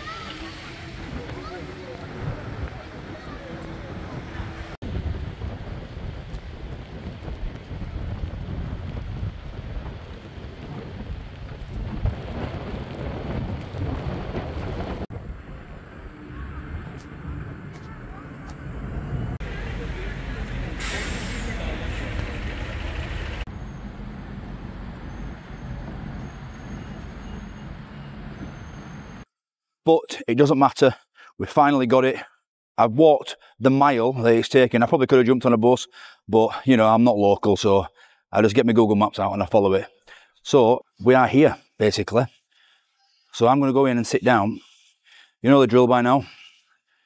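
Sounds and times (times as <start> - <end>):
traffic passing on wet road: 0.0 - 29.2.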